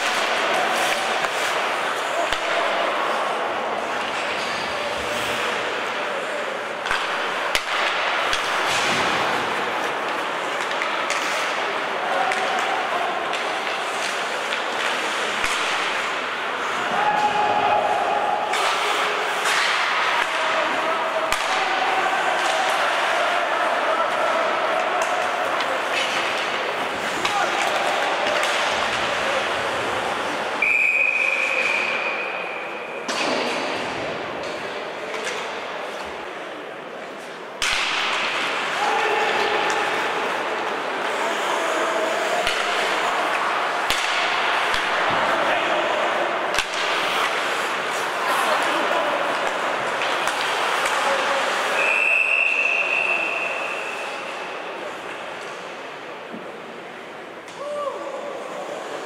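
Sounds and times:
hockey sticks and puck clacking: 0:00.0 - 0:59.0
shouting voices echoing: 0:15.9 - 0:33.1, 0:38.4 - 0:54.5
referee's whistle: 0:30.6 - 0:32.7, 0:51.8 - 0:54.2.

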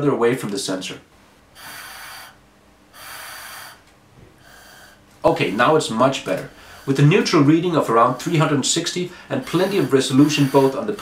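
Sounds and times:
breath puffed through plastic tube: 0:01.6 - 0:05.6.

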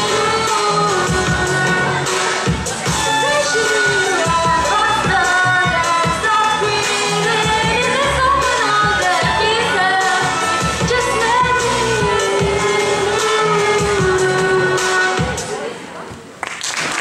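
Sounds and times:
girl singing into a microphone: 0:00.0 - 0:15.7.

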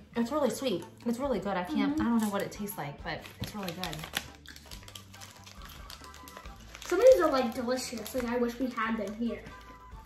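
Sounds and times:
candy clicking against teeth: 0:03.2 - 0:10.0.

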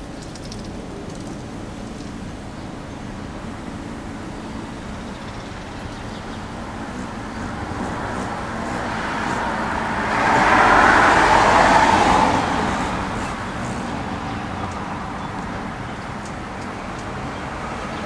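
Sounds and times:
passing vehicle hum: 0:00.0 - 0:18.0.

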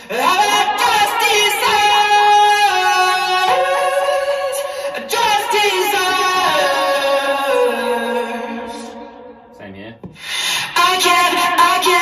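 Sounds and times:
sung vocal with effects: 0:00.0 - 0:09.6, 0:10.2 - 0:12.0
song music: 0:00.0 - 0:12.0.

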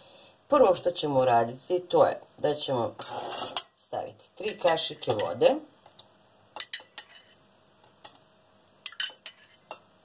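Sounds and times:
metal spoon clinking on mug and pot: 0:04.4 - 0:05.4, 0:06.6 - 0:07.4, 0:08.8 - 0:09.8.

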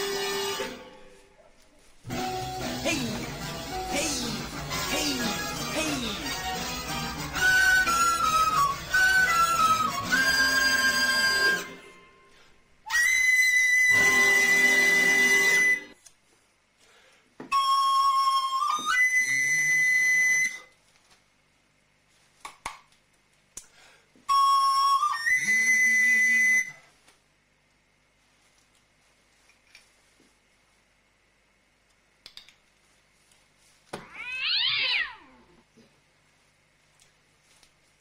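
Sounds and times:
musical accompaniment: 0:00.0 - 0:01.2, 0:02.1 - 0:12.3, 0:13.7 - 0:16.0
recorder playing jazz melody: 0:02.1 - 0:11.8, 0:12.9 - 0:16.0, 0:17.5 - 0:20.6, 0:24.3 - 0:26.7.

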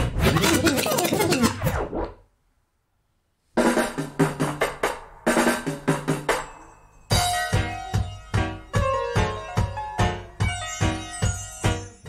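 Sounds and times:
scratchy rubbing: 0:00.2 - 0:02.0.

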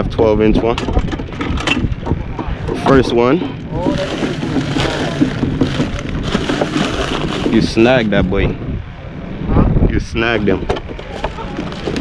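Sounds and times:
wind buffeting microphone: 0:00.0 - 0:12.0
faint voices: 0:02.1 - 0:12.0.

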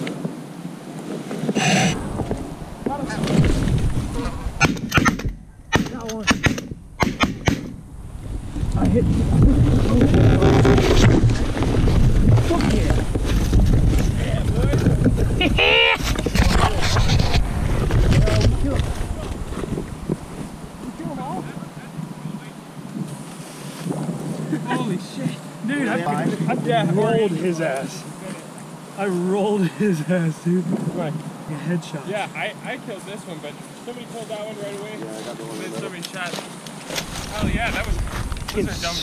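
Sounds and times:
wind buffeting: 0:00.0 - 0:29.6, 0:37.0 - 0:39.0
shotgun shots: 0:04.6 - 0:07.8.

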